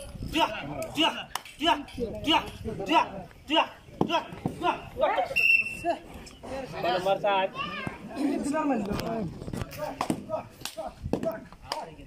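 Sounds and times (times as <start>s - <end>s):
crowd shouting and yelling: 0.0s - 8.7s.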